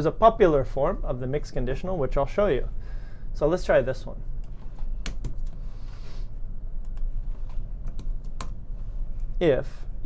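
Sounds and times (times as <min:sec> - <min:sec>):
low steady hum: 0:00.0 - 0:10.0
computer keys clicking: 0:04.4 - 0:05.6, 0:06.8 - 0:07.1, 0:07.8 - 0:08.6.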